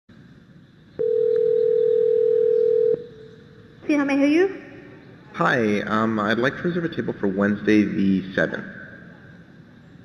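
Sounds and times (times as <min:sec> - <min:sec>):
telephone ringback tone: 0:01.0 - 0:03.0.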